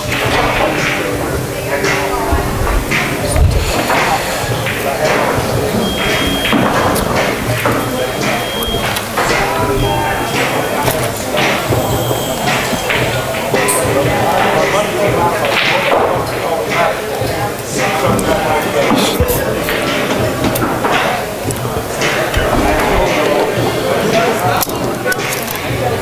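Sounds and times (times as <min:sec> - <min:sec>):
background voices: 0:00.0 - 0:26.0.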